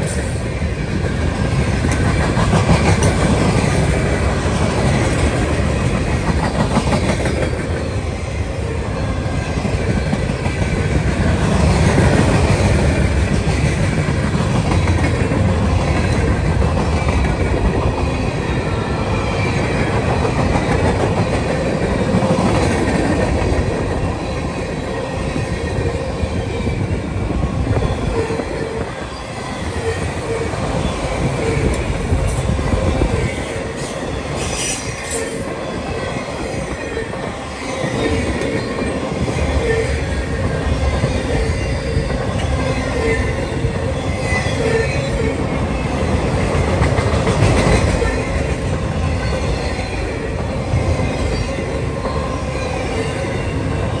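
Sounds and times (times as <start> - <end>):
steel wheels rumbling on rail: 0.0 - 54.0.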